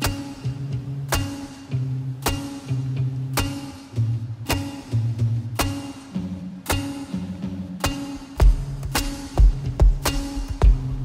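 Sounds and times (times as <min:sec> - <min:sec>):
acoustic guitar playing: 0:00.0 - 0:11.0
sharp percussive hit: 0:07.8 - 0:11.0.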